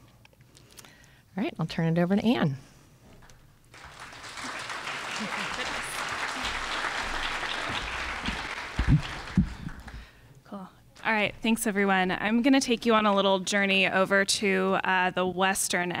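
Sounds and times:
audience applause: 3.7s - 10.2s
low thumps: 8.8s - 10.0s.

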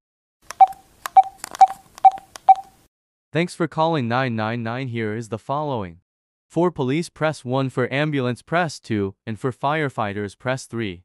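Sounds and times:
telephone keypad tones: 0.5s - 2.8s.

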